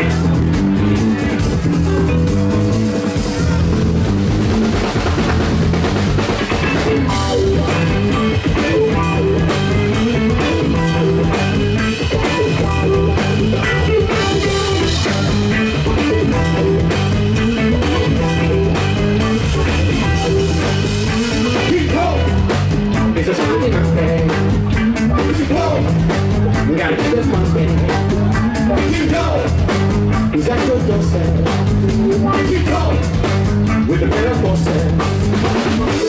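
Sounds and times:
drum kit: 0.0s - 36.0s
electric guitars: 0.0s - 36.0s.

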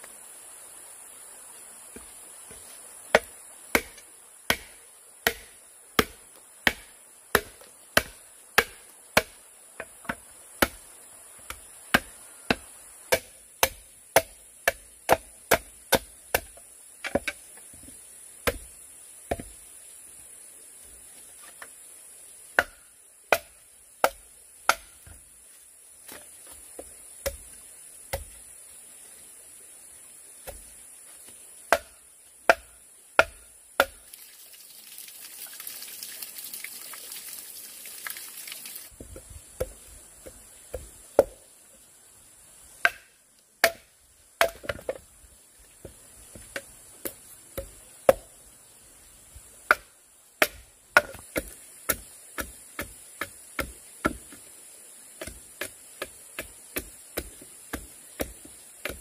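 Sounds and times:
insects buzzing: 0.0s - 59.0s
machete chopping bamboo: 3.1s - 10.8s, 11.4s - 17.4s, 18.4s - 19.6s, 22.5s - 25.2s, 26.1s - 28.4s, 30.4s - 30.7s, 31.6s - 34.0s, 39.6s - 41.4s, 42.8s - 45.0s, 46.4s - 48.3s, 49.6s - 54.5s, 55.2s - 59.0s.

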